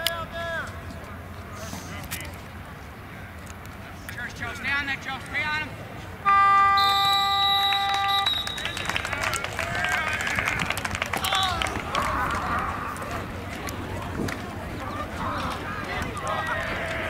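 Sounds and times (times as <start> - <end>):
scoreboard horn blast: 6.2 - 8.9
players and spectators shouting: 6.2 - 17.0.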